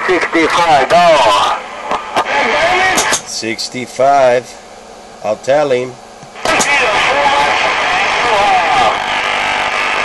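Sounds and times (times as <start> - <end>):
voice over cb radio: 0.0 - 1.5, 2.2 - 3.2, 6.4 - 9.1
radio hiss and static: 0.0 - 10.0
radio key-up click: 6.2 - 6.9.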